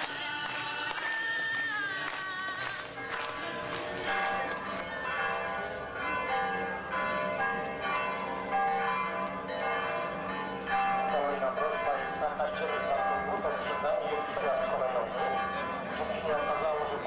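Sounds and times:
bells chiming a melody: 0.7s - 17.0s.

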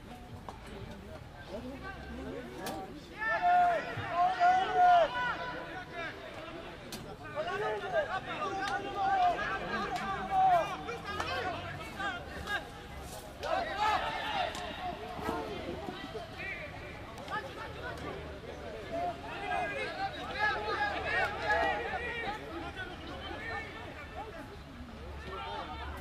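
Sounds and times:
voices shouting over one another: 3.0s - 26.0s.

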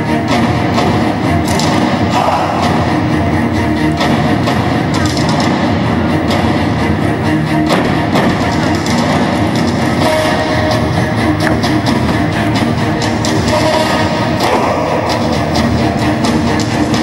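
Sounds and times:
loud rock music: 0.0s - 17.0s.

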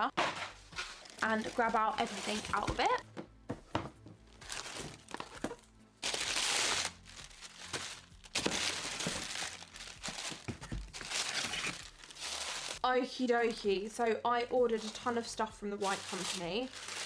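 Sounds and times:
paper packing wrap rustling: 0.7s - 3.0s, 4.2s - 12.8s, 14.7s - 17.0s.

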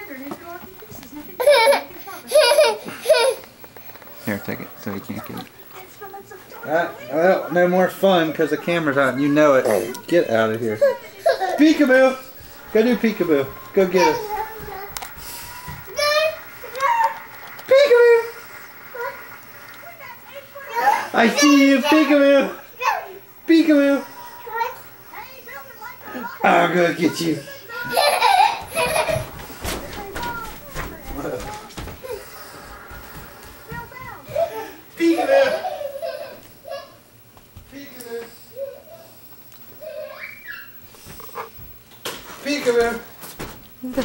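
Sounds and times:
child squealing: 39.8s - 40.8s.

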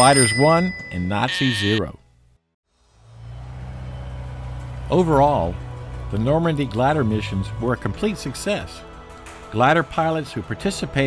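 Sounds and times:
engine idling: 3.0s - 7.5s.

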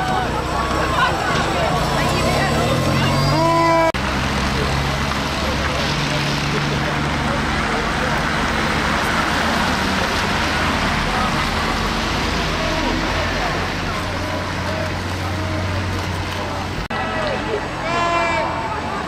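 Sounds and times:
many voices shouting: 0.0s - 4.0s, 16.9s - 19.0s
heavy truck engines running: 0.0s - 19.0s.

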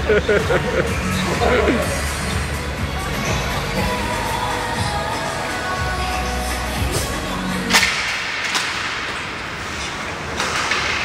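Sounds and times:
hockey stick clacks: 7.7s - 11.0s
hockey stick cracking puck: 7.7s - 11.0s
skates scraping on ice: 8.5s - 11.0s.

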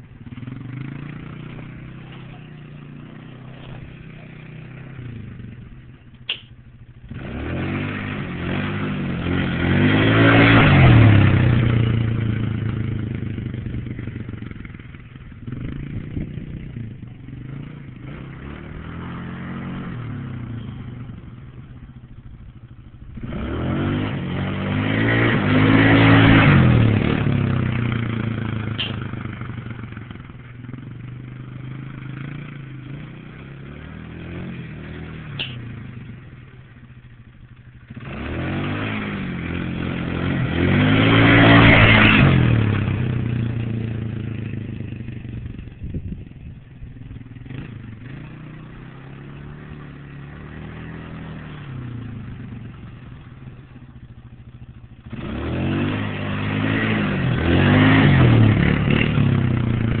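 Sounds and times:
quad bike engine accelerating: 0.0s - 60.0s.

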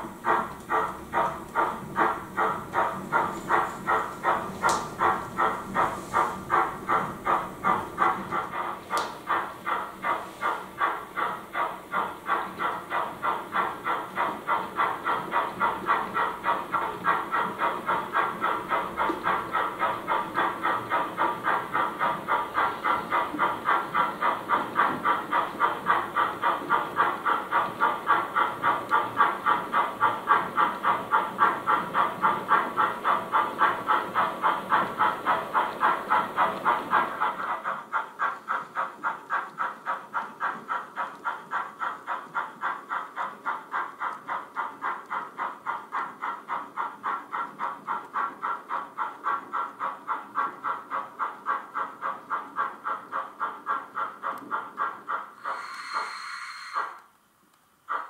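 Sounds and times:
model steam locomotive chuffing: 0.0s - 58.0s.

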